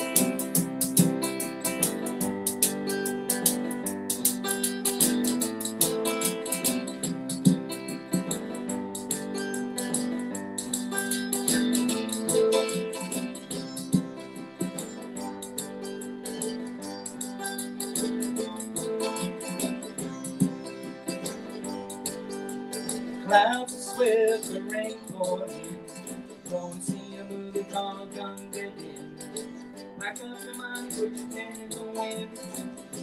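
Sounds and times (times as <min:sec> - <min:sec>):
picked mandolin notes: 0:00.0 - 0:33.0
quick ticking rhythm: 0:00.0 - 0:33.0.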